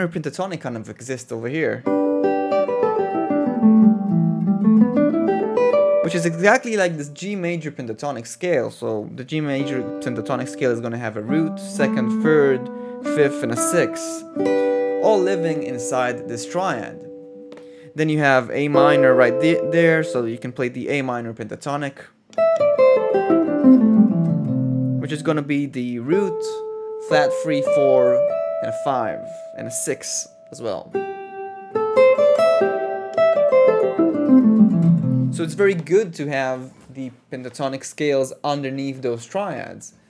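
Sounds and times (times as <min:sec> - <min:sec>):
clean electric guitar single notes: 0:09.6 - 0:18.0, 0:18.6 - 0:20.5, 0:26.6 - 0:35.8.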